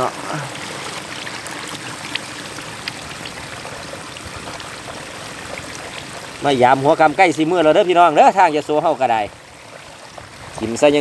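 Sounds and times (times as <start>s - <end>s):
faint ticks and splashes: 0.0s - 11.0s
water trickling and sloshing: 0.0s - 11.0s.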